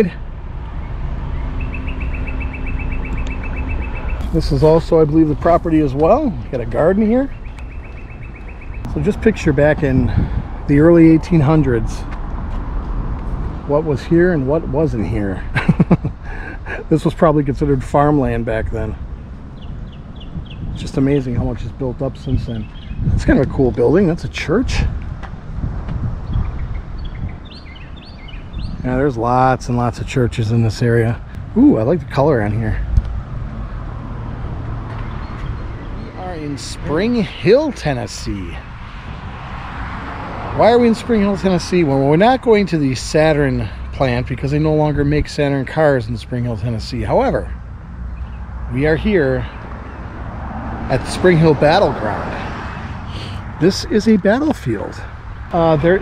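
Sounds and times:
bird trilling: 1.3 - 4.4, 6.8 - 9.0
steady low rumble: 2.8 - 27.5.

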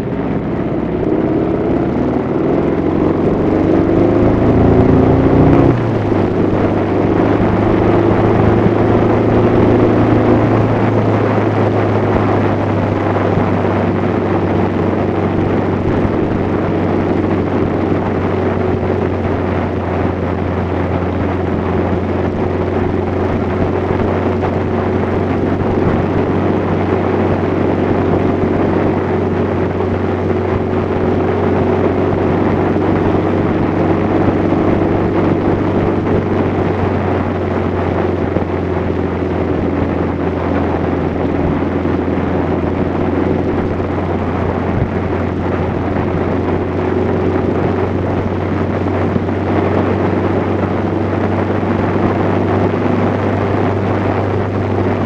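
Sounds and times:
motorcycle engine cruising: 0.0 - 55.0
wind rush: 0.0 - 55.0.

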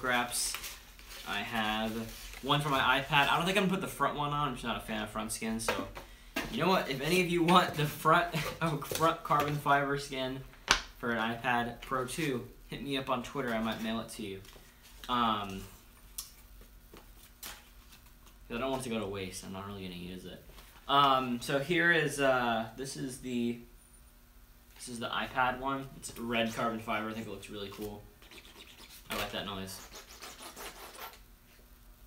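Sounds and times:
vinyl sheets crinkling: 0.0 - 3.8, 6.5 - 10.1, 13.1 - 19.1, 26.1 - 31.2.

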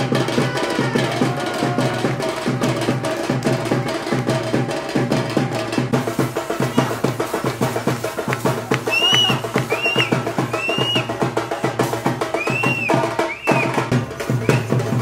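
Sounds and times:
folk drum ensemble: 0.0 - 15.0.

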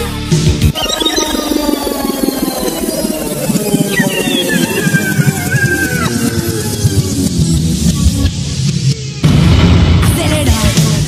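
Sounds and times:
sliding tone falling in pitch: 0.7 - 8.0.

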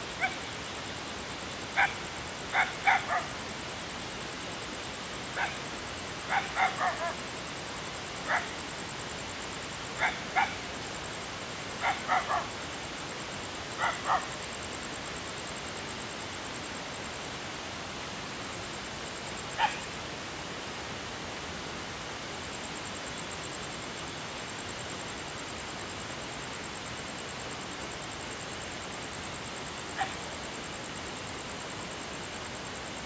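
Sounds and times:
steady background hiss: 0.0 - 33.0.

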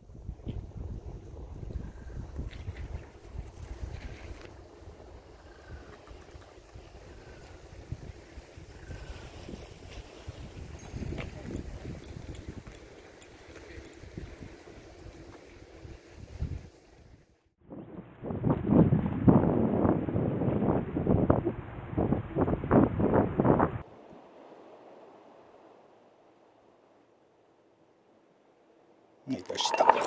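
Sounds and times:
wind buffeting microphone: 0.0 - 16.8, 17.7 - 23.9.

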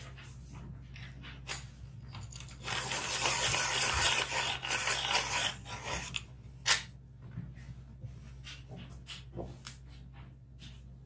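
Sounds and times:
dry scraping: 2.3 - 6.3.

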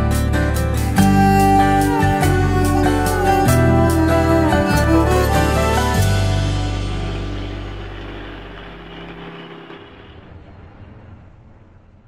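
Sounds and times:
low rumbling drone with hiss: 0.0 - 12.0.

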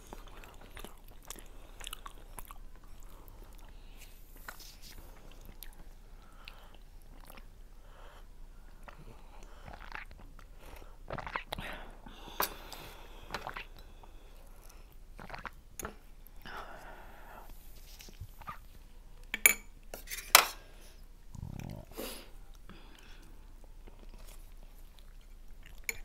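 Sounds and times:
people chewing: 0.0 - 7.5, 21.3 - 26.0
sipping: 11.1 - 11.8, 12.6 - 13.8, 15.2 - 16.6.

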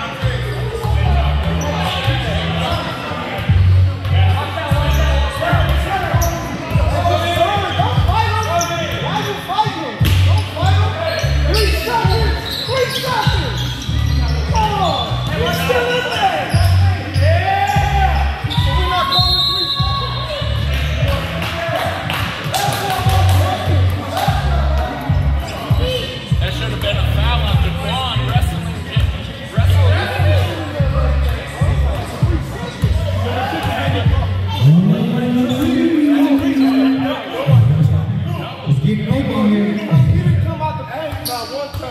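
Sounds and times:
sneakers squeaking: 0.1 - 37.6, 41.0 - 41.9.

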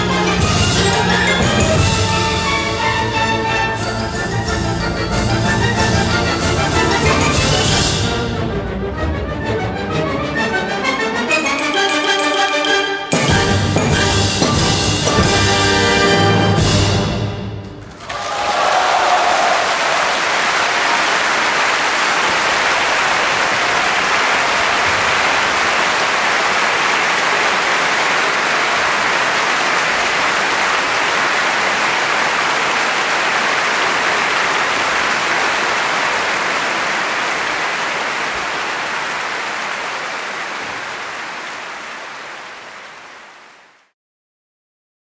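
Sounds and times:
large audience applauding: 17.8 - 43.9.

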